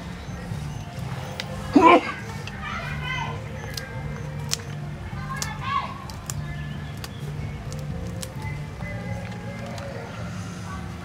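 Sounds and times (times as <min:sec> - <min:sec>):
children talking and playing: 0:00.0 - 0:11.0.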